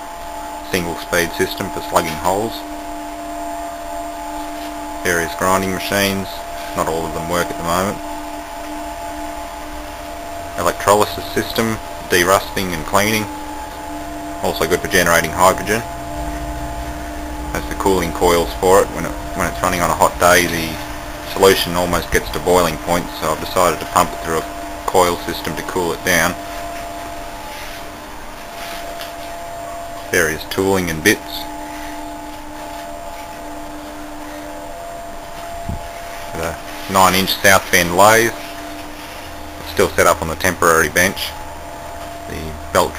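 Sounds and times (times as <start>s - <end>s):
machinery whirring hum: 0.0s - 42.9s.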